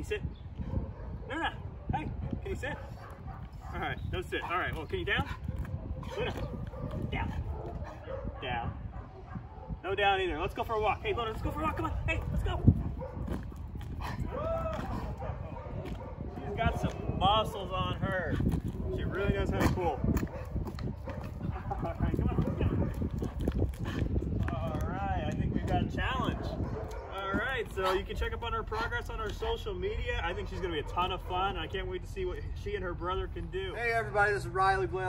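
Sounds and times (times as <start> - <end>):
dog paws on asphalt: 2.1 - 33.8
footsteps on asphalt: 2.8 - 8.1, 10.5 - 29.8.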